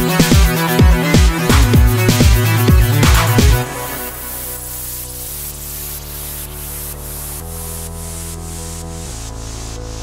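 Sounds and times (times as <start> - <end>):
electro house music: 0.0 - 10.0
hissing noise layer: 0.0 - 10.0.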